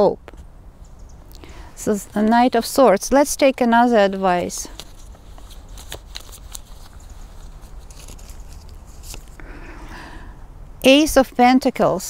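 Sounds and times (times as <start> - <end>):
cards being shuffled: 3.9 - 9.4.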